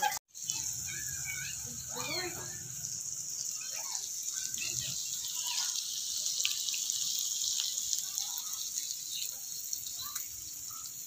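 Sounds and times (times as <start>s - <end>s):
meat sizzling on a grill pan: 0.3s - 11.0s.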